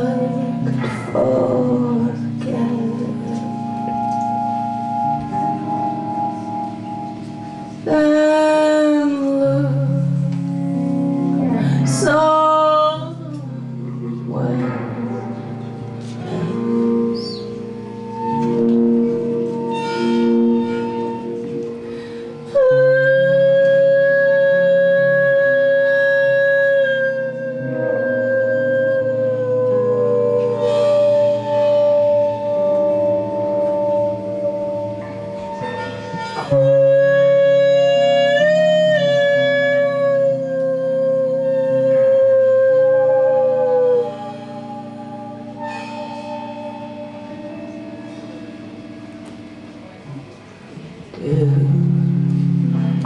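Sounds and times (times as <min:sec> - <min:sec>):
woman singing long notes: 0:00.0 - 0:06.3, 0:07.8 - 0:17.1, 0:17.8 - 0:49.2, 0:51.0 - 0:53.0
low sustained instrumental accompaniment: 0:00.0 - 0:53.0.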